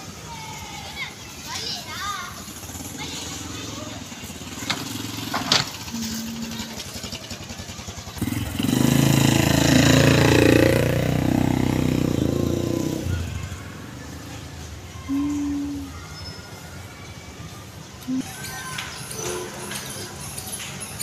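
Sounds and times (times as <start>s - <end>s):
small motorcycle engine passing: 2.0s - 15.9s.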